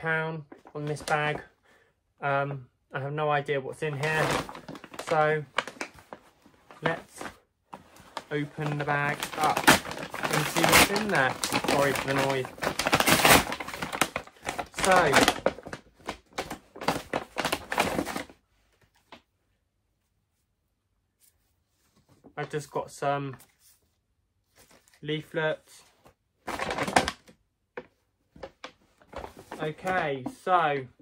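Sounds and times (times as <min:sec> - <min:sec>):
paper bag crinkling: 0:03.8 - 0:18.4, 0:26.4 - 0:27.3, 0:28.4 - 0:30.4.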